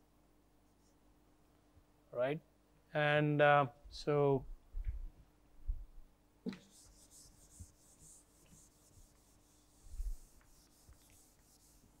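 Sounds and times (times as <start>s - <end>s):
eraser wiping a whiteboard: 6.6s - 12.0s.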